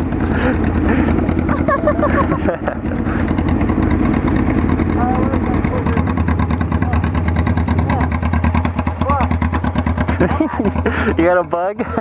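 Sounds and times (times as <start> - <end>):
motorcycle engines idling: 0.0 - 12.0
people laughing: 0.2 - 3.5, 10.0 - 12.0
people talking: 4.9 - 7.2, 7.8 - 8.2, 9.0 - 9.3, 10.2 - 12.0.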